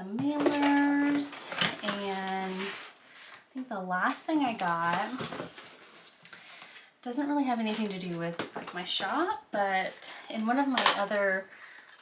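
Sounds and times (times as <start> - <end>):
paper and cardboard rustling: 0.2 - 3.4, 4.4 - 6.7.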